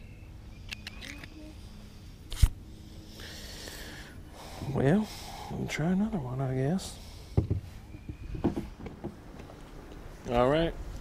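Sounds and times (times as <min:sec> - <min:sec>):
dull knocks in a boat: 0:07.4 - 0:09.2.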